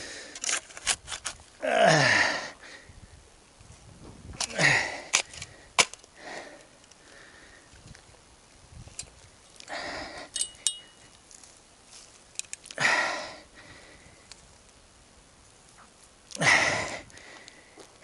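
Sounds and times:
shovel scraping into dry soil: 0:00.3 - 0:01.5
shovel blade clinking on stones: 0:10.3 - 0:11.1.

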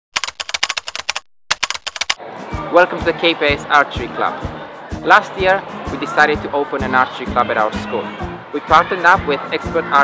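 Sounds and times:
rapid keyboard typing: 0:00.1 - 0:02.2.

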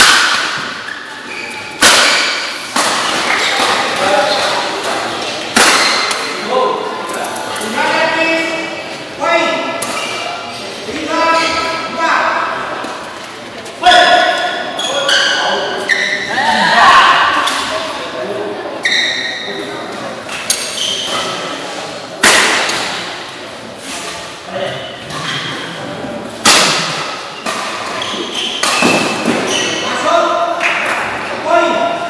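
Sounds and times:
racket striking shuttlecock: 0:01.8 - 0:03.8.

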